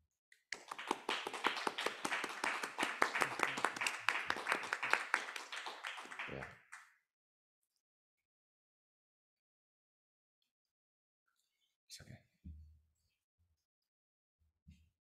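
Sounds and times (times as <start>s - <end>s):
audience applauding: 0.5s - 6.8s.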